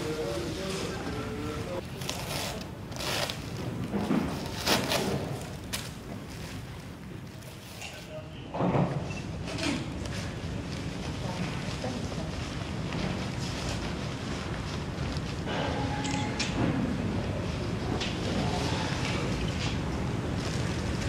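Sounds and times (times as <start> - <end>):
paper and plastic rustling: 0.0 - 8.2, 18.1 - 21.0.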